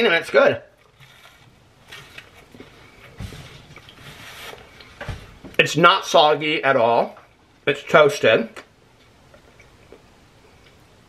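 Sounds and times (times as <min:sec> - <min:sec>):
faint chewing: 0:09.0 - 0:10.9.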